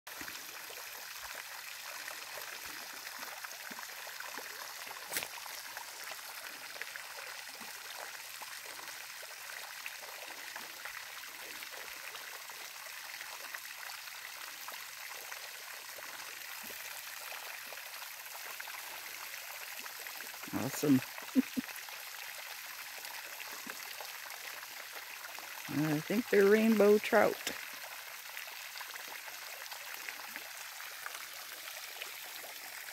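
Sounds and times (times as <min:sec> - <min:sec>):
fountain water splashing: 0:00.1 - 0:32.9.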